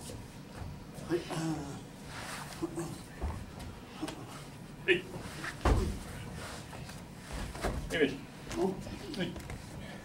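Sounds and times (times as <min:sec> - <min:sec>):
bodies thudding on floor mat: 0:05.5 - 0:06.2.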